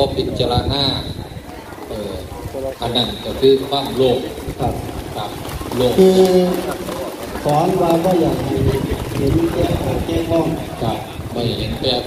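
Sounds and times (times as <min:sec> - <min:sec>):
man speaking through a microphone: 0:00.0 - 0:12.0.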